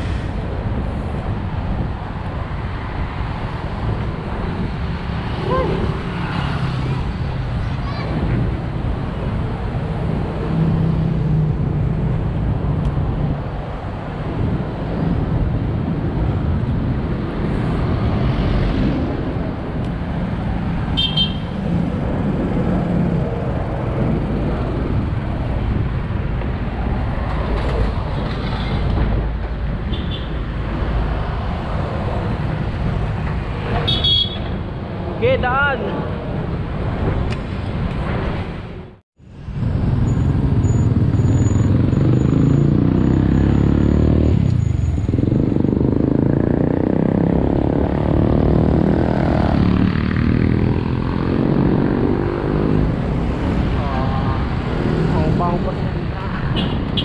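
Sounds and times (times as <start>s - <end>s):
road traffic passing: 0.0s - 57.0s
wind rumble on microphone: 7.0s - 33.8s, 44.3s - 57.0s.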